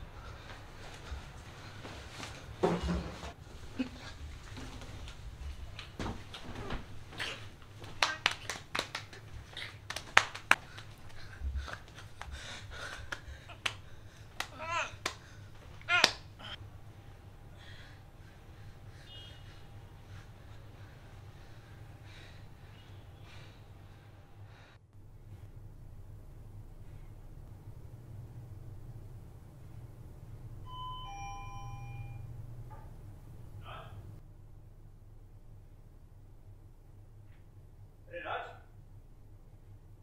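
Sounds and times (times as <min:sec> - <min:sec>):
man making strained choking cries: 0:14.4 - 0:15.1
two-tone doorbell chime: 0:30.6 - 0:32.4.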